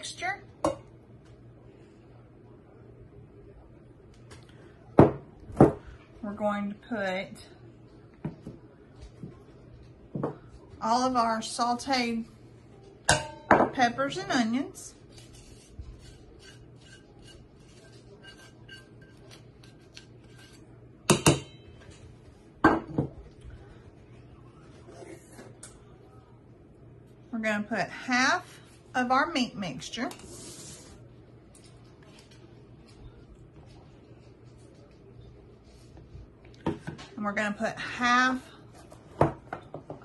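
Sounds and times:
tongs scraping a skillet: 15.2 - 20.7.

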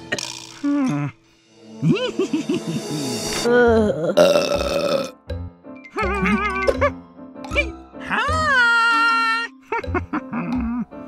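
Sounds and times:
cartoon burp: 3.8 - 5.2.

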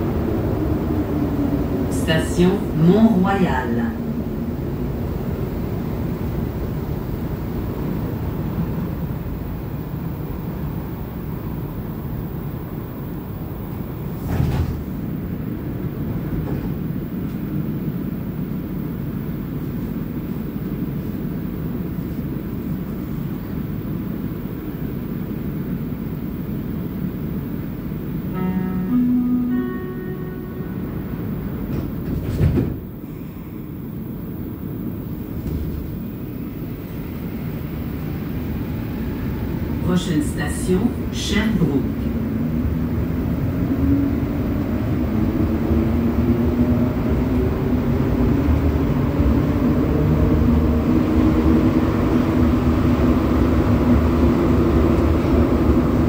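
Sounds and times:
train rumbling: 0.0 - 56.0
two-note electronic chime: 28.3 - 31.3.

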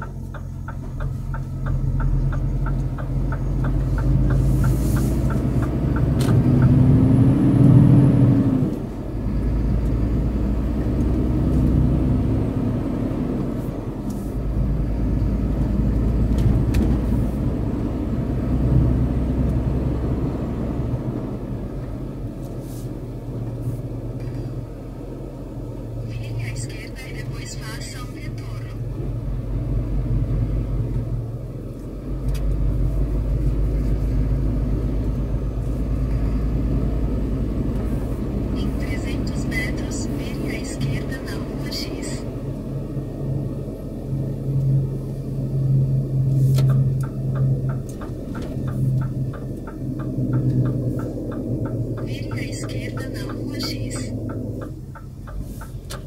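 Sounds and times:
truck engine rumbling: 0.0 - 56.0.

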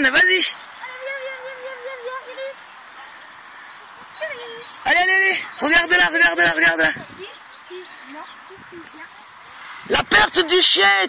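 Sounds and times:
quiet background voices: 0.0 - 11.0.

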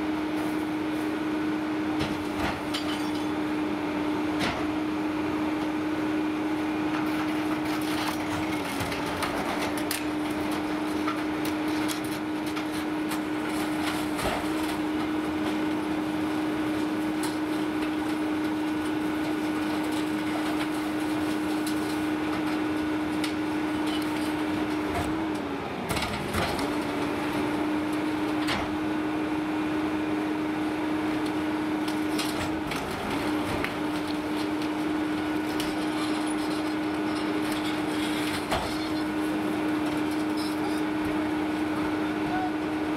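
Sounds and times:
garbage truck engine hum: 0.0 - 42.9.

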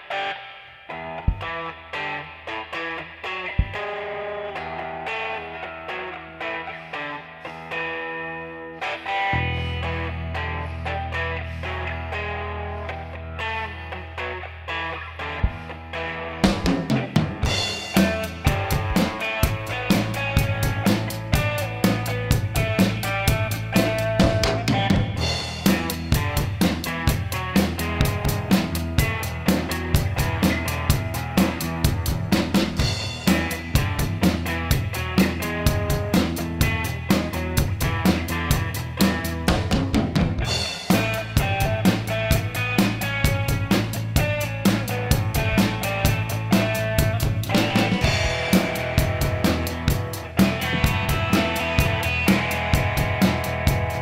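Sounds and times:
electric guitar: 0.0 - 54.0
drum kit beat: 1.2 - 8.2, 15.2 - 54.0
bass guitar low notes: 9.3 - 14.2, 15.3 - 54.0.

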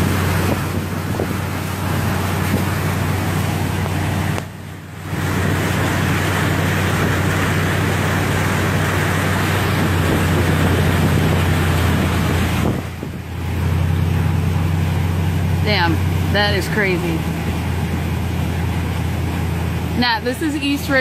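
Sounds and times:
truck engine drone: 0.0 - 21.0
water rushing and splashing: 0.0 - 21.0.

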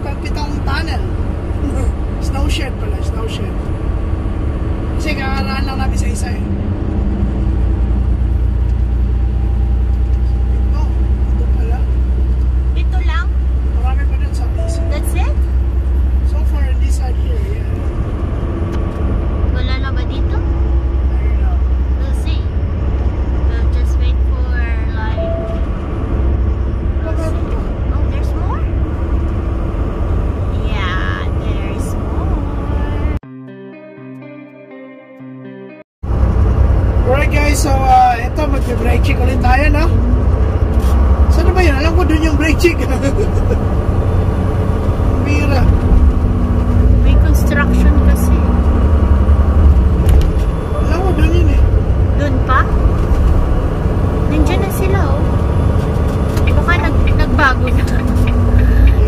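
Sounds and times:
people talking: 0.0 - 3.6, 5.0 - 6.4, 10.5 - 11.9, 12.8 - 15.4, 16.3 - 17.8, 19.5 - 20.4, 21.1 - 22.5, 23.5 - 25.4, 27.0 - 28.7, 30.5 - 33.2, 37.0 - 40.0, 41.3 - 43.6, 45.2 - 45.8, 47.0 - 48.6, 50.7 - 52.7, 54.3 - 55.3, 56.5 - 59.0
road noise: 0.0 - 33.2, 36.0 - 59.0
truck engine drone: 0.0 - 33.2, 36.0 - 59.0.

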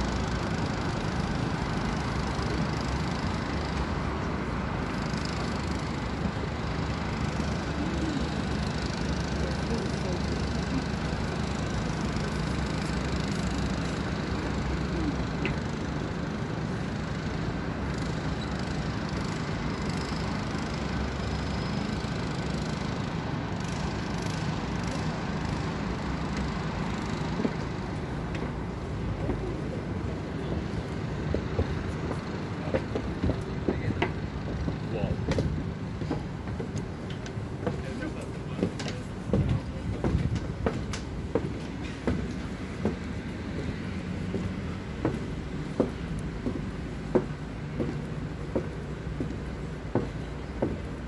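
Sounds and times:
city traffic hum: 0.0 - 51.0.

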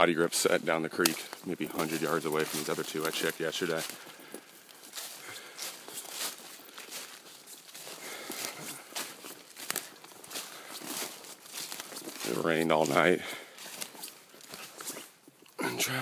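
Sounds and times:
footsteps crunching through leaves: 0.4 - 15.2.

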